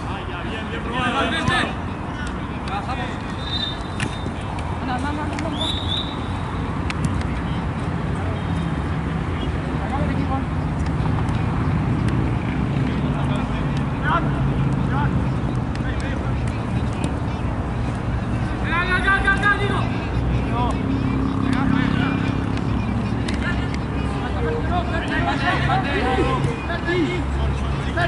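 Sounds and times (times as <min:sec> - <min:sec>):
players shouting: 0:00.4 - 0:04.4, 0:23.3 - 0:28.0.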